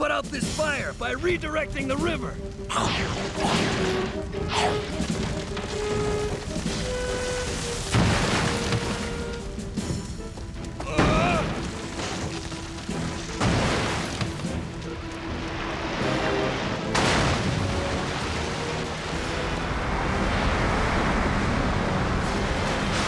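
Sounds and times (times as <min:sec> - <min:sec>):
dramatic music: 0:00.0 - 0:23.0
rushing water: 0:00.0 - 0:23.0
heavy crashing impacts: 0:03.1 - 0:10.3.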